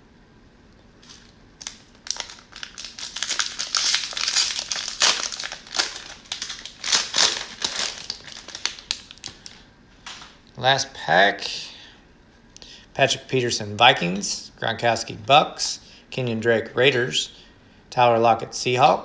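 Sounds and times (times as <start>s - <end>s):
cellophane wrapper crinkling: 1.0s - 10.4s.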